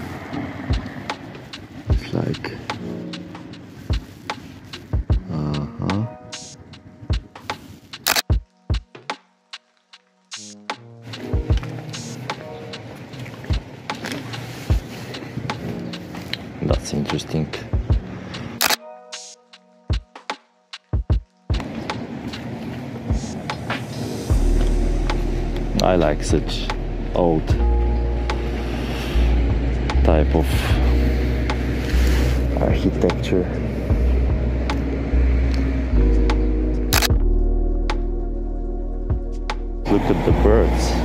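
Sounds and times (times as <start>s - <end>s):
street background noise: 0.0s - 8.5s, 11.0s - 18.8s, 21.0s - 37.1s, 39.8s - 41.0s
background music with steady chords: 0.0s - 41.0s
camera shutter click: 8.0s - 8.3s, 18.6s - 18.8s, 36.9s - 37.2s.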